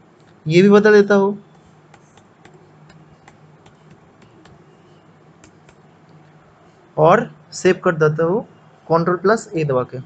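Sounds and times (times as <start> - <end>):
keyboard keys clicking: 1.5 - 4.6, 5.4 - 5.8.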